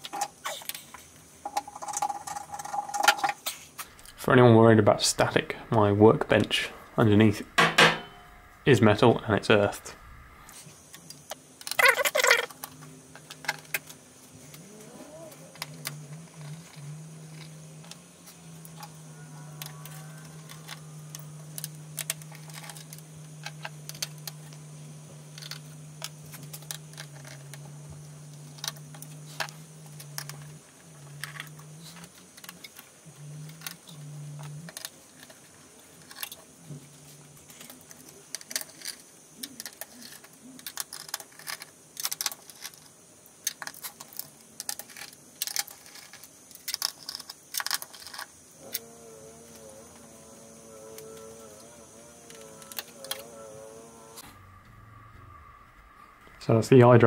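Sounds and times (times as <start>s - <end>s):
low steady hum: 0.0s - 43.4s.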